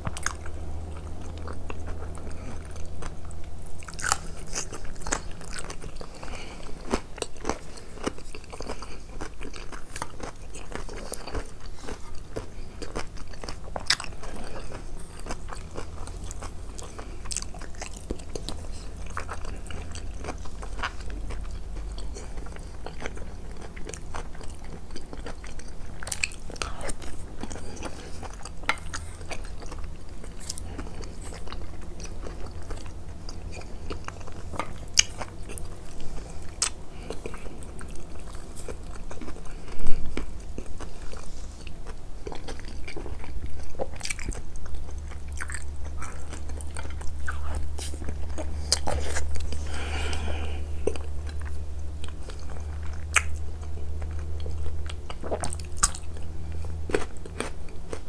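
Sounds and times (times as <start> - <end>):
close chewing and biting: 0.0 - 58.0.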